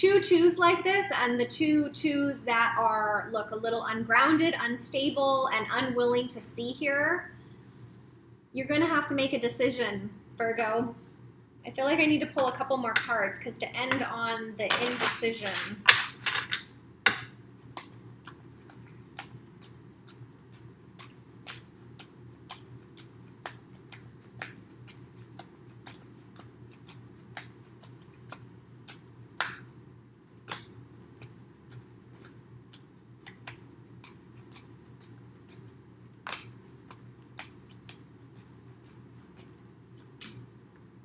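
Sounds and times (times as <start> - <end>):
cards being shuffled: 14.7 - 15.9, 30.4 - 40.5.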